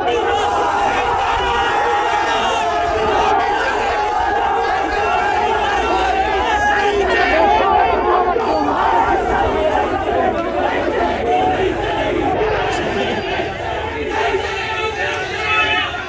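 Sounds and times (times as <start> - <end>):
crowd of protesters shouting: 0.0 - 16.0.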